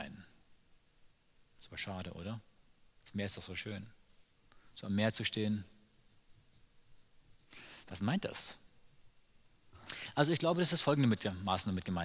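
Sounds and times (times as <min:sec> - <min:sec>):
fingers scratching hair: 0:05.9 - 0:09.8
intake of breath: 0:07.5 - 0:07.9, 0:09.7 - 0:10.2.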